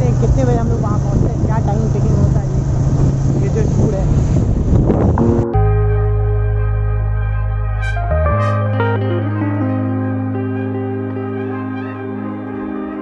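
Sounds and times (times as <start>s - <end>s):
motorcycle engine running: 0.0s - 6.3s
wind noise on microphone: 0.0s - 8.4s
music: 5.2s - 13.0s.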